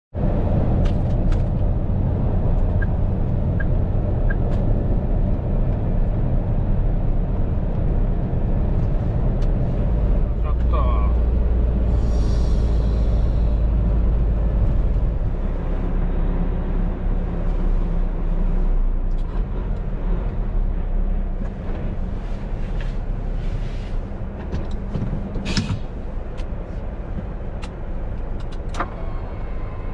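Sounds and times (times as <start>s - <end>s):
truck diesel engine rumbling: 0.2s - 29.9s.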